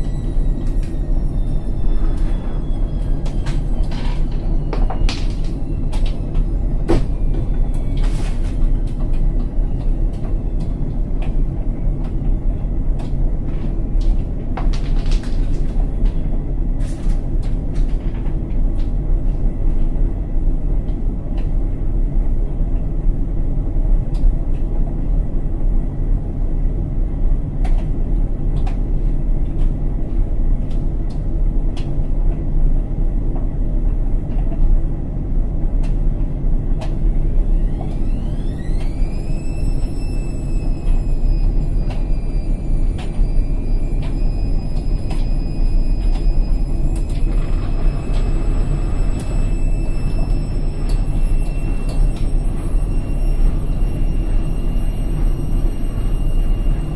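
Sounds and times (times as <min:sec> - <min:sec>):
washing machine drum rumbling: 0:00.0 - 0:26.1, 0:27.2 - 0:56.9.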